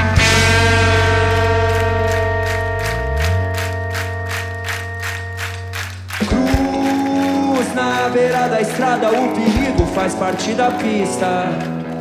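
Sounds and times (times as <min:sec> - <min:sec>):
held ringing guitar chord: 0:00.0 - 0:05.8
low sliding bass note: 0:00.0 - 0:05.8
drum strikes: 0:00.0 - 0:07.1, 0:09.4 - 0:10.2
rock band playing: 0:00.0 - 0:12.0.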